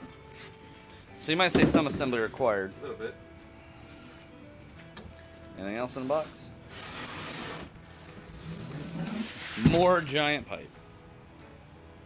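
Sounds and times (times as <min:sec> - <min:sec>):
cardboard box rustling and scraping: 0:06.8 - 0:10.1.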